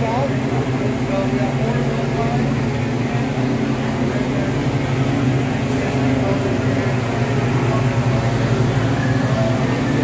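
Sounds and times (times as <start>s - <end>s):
machinery hum: 0.0s - 10.0s.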